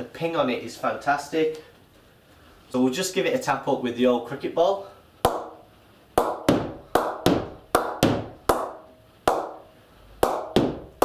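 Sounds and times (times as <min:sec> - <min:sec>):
ball knocking on cricket bat: 0:10.2 - 0:11.0.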